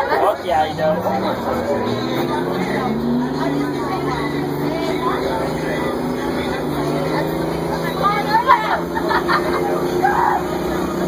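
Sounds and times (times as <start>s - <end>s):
bus engine running: 0.0s - 11.0s
faint voices: 0.0s - 11.0s.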